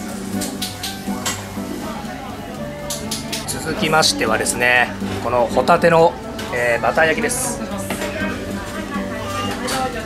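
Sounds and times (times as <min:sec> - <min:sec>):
butter sizzling and bubbling on grill: 0:00.0 - 0:06.7
background music: 0:00.0 - 0:10.0.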